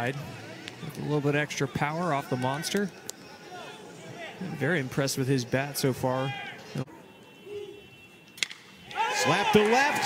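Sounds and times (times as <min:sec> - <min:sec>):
quiet ballpark background: 0:00.0 - 0:10.0.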